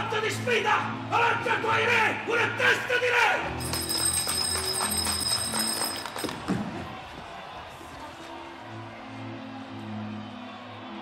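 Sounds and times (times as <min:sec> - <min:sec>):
loud shout: 0:00.0 - 0:03.5
handbell ringing: 0:03.6 - 0:06.5.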